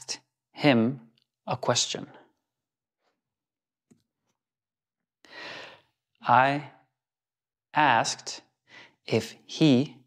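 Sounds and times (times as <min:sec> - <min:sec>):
man breathing: 0:05.2 - 0:06.0.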